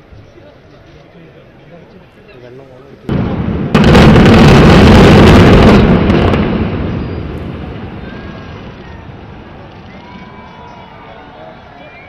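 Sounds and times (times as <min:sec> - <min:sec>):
sudden blast: 0:03.1 - 0:09.6
explosive charges: 0:03.1 - 0:10.3
building collapse rumble: 0:03.1 - 0:11.2.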